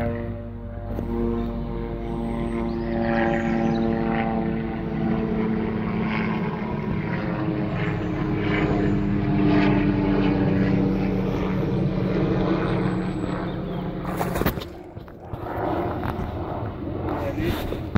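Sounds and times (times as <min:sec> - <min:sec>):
propeller aircraft droning: 0:00.0 - 0:17.9.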